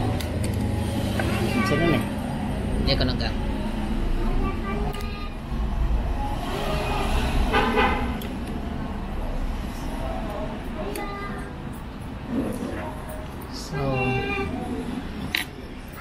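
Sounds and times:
traffic rumble: 0.0 - 16.0.

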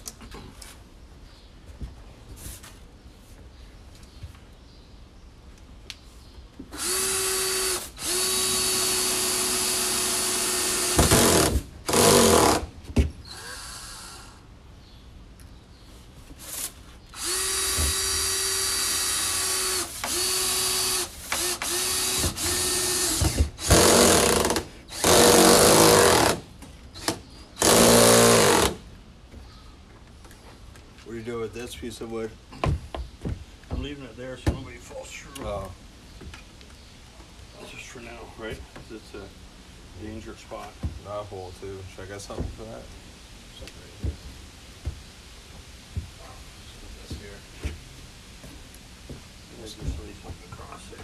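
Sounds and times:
cordless drill driving screws: 6.7 - 12.7, 13.3 - 14.4, 17.2 - 26.4, 27.0 - 28.8.

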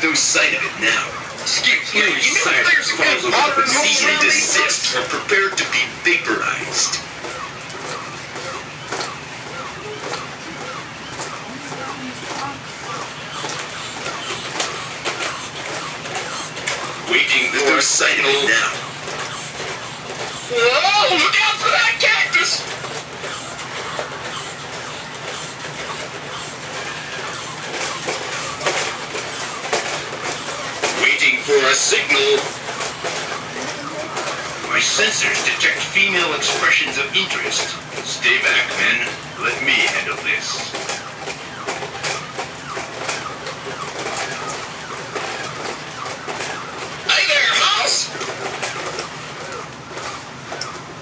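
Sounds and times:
toy robot motors whirring: 0.1 - 50.8
plastic feet clacking on concrete: 0.4 - 50.8.

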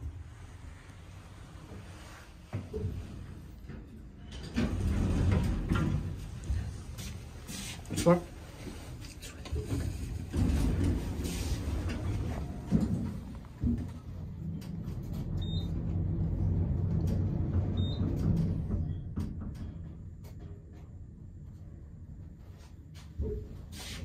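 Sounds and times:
elevator motor rumbling: 0.0 - 22.5.

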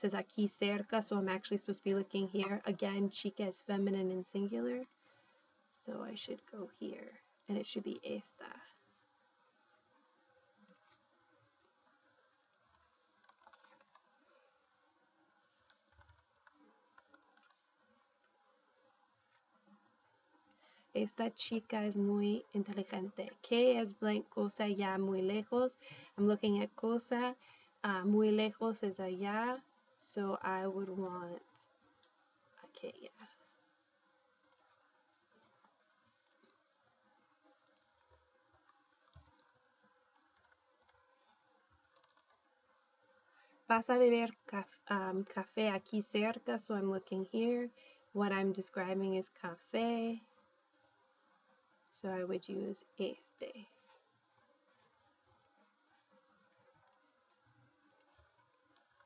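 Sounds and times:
keyboard typing clicks: 4.8 - 5.0, 10.6 - 11.0, 12.4 - 14.1, 15.6 - 18.4, 37.5 - 41.1, 41.8 - 42.4
soft mouse clicks: 4.8 - 5.1, 8.5 - 8.9, 10.6 - 11.1, 12.4 - 14.2, 15.6 - 18.4, 19.2 - 20.7, 30.5 - 33.6, 34.5 - 36.7, 37.4 - 42.5, 53.2 - 54.1, 54.7 - 59.0.

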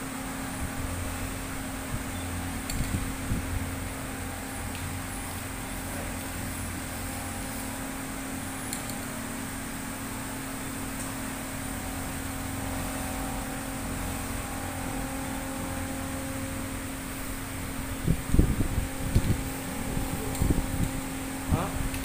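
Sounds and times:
machine hum: 0.0 - 22.0.

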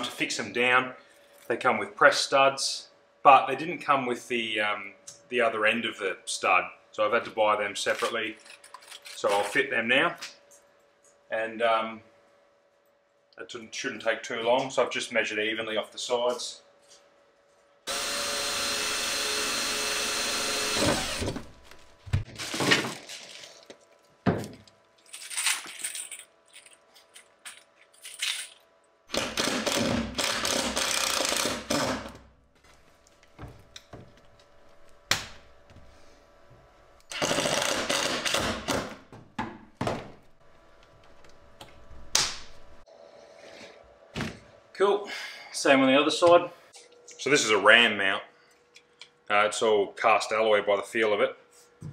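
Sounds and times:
cordless drill running: 17.9 - 21.7, 29.1 - 31.9, 37.1 - 38.5.

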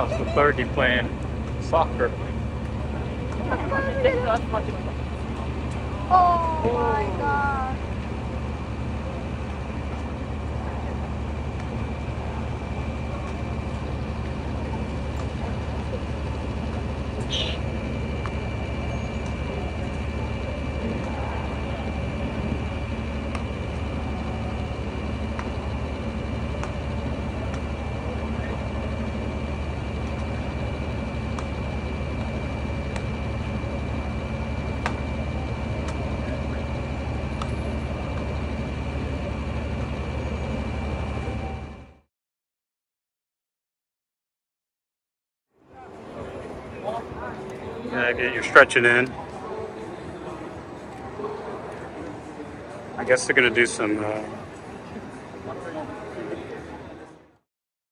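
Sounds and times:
high-pitched whine: 0.0 - 42.0
machinery hum: 0.0 - 42.1, 45.6 - 57.4.

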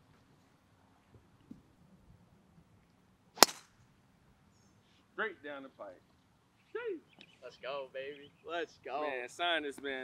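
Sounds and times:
golf club striking ball: 3.4 - 3.8.

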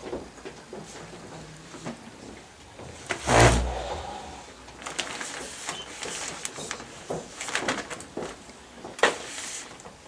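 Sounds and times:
heavy low thump: 3.2 - 4.6.

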